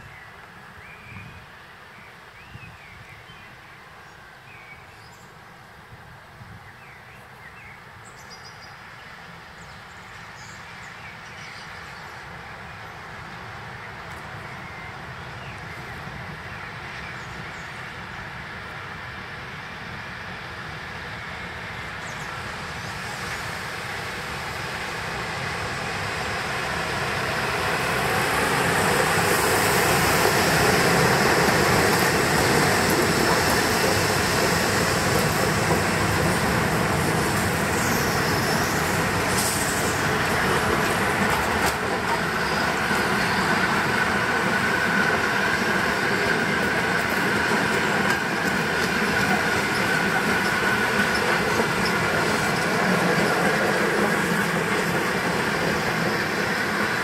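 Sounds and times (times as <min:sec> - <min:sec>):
train passing on rails: 0:00.0 - 0:57.0.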